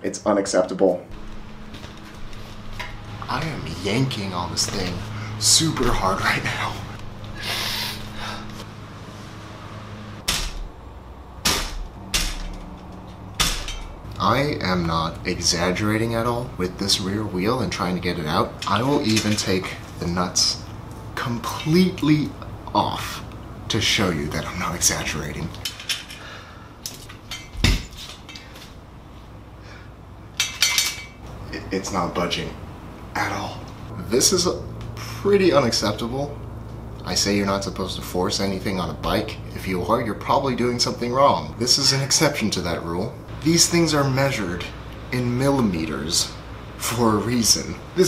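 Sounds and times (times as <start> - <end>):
sharp metallic knocks: 10.2 - 10.8, 11.4 - 14.1.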